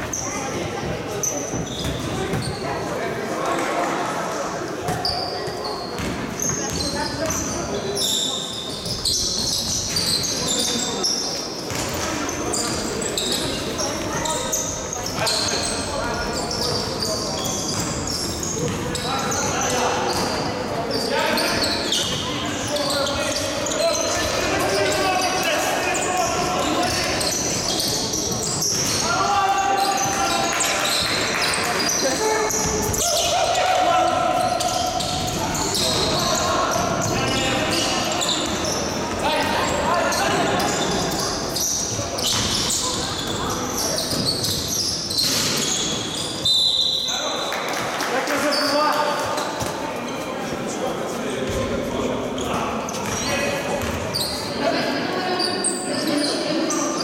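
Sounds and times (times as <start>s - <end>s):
sneaker squeaks: 0.0s - 3.0s, 4.6s - 57.0s
basketball bouncing on court: 6.0s - 7.5s, 53.0s - 54.0s
players calling out: 12.2s - 47.1s.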